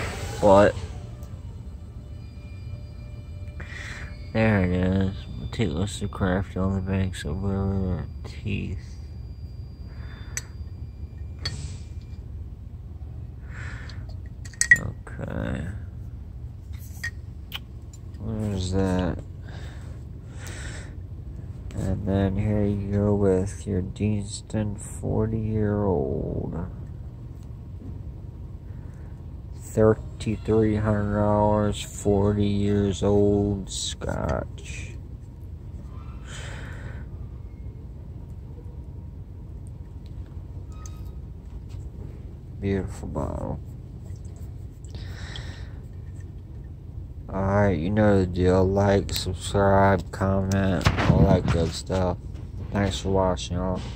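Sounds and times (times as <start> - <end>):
low hum: 0.0 - 53.9
person breathing out: 3.6 - 4.2, 13.4 - 14.1, 19.4 - 21.0, 36.2 - 37.2, 44.9 - 45.8.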